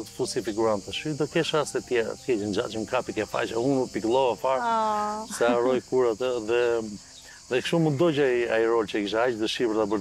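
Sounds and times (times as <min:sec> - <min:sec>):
high-pitched hiss: 0:00.0 - 0:10.0
man speaking: 0:00.0 - 0:10.0.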